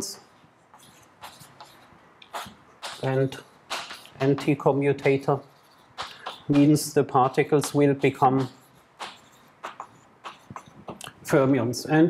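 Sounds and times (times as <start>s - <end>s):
chalk scratching on blackboard: 0.7s - 11.2s.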